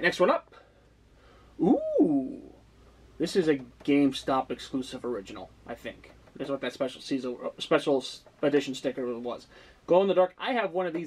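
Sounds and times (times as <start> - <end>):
man saying ooh: 1.6 - 2.6.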